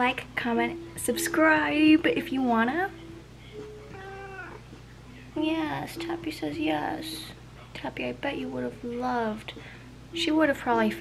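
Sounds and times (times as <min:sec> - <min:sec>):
cat meowing: 0:03.8 - 0:04.7.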